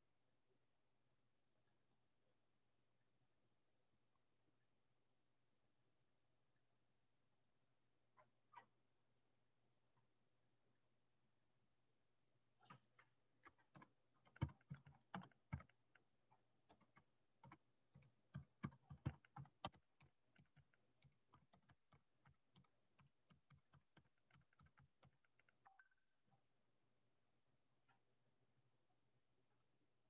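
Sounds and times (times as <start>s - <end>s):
typing on computer keyboard: 13.4s - 25.8s.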